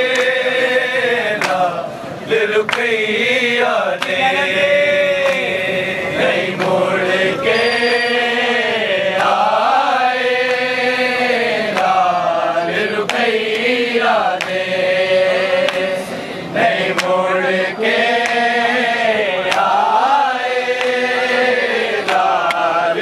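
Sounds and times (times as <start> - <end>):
sharp slaps: 0.0 - 0.4, 2.7 - 3.0, 13.0 - 13.8, 14.4 - 14.7, 15.6 - 15.9, 16.9 - 17.2, 22.0 - 22.7
men chanting in unison: 0.0 - 23.0.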